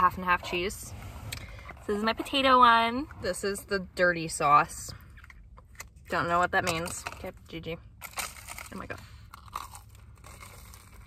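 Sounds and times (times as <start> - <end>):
chewing crispy food: 8.0 - 11.0
crunchy bite: 8.0 - 11.0.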